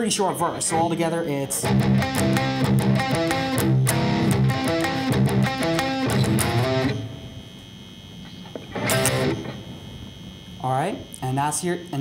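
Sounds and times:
electric guitar playing low chords: 0:00.7 - 0:07.7, 0:08.5 - 0:10.2
electric guitar power chord hits: 0:01.6 - 0:07.4, 0:08.6 - 0:09.8.

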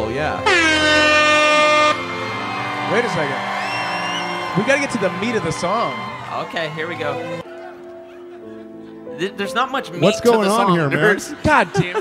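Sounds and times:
quiet music: 0:00.0 - 0:12.0
air horn blast: 0:00.4 - 0:02.4.

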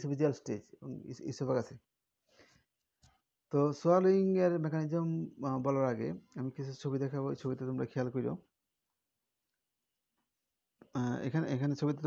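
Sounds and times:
man lecturing: 0:00.0 - 0:01.8, 0:03.6 - 0:08.5, 0:11.0 - 0:12.0.

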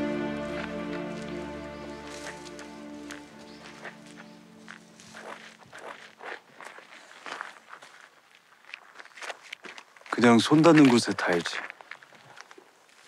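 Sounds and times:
background music: 0:00.0 - 0:05.6
footsteps on gravel: 0:00.0 - 0:13.0.

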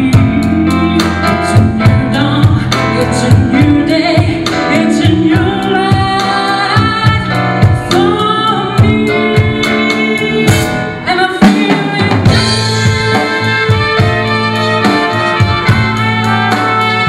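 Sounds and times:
woman singing: 0:00.0 - 0:13.8
drum kit beat: 0:00.0 - 0:17.0
live blues band: 0:00.0 - 0:17.0.

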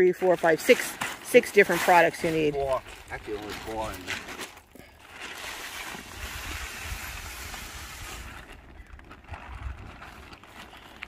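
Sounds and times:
plastic tarp rustling: 0:00.0 - 0:11.0.

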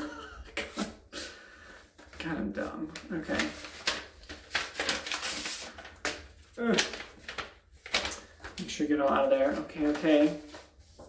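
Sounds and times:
paper envelope rustling: 0:01.7 - 0:11.0.

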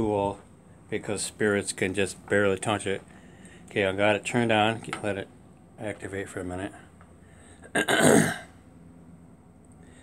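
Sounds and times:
man coughing: 0:07.6 - 0:08.6.

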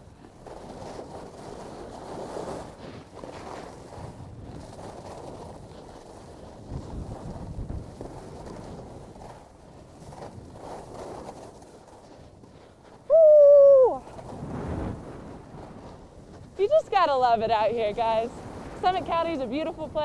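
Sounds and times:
skis carving over snow: 0:00.0 - 0:20.0
wind on microphone: 0:00.0 - 0:20.0
person whooping: 0:13.1 - 0:14.1.

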